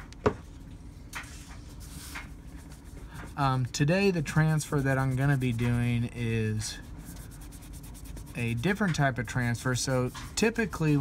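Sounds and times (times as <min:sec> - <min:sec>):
faint room hum: 0:00.0 - 0:11.0
hand rubbing on tabletop: 0:01.3 - 0:11.0.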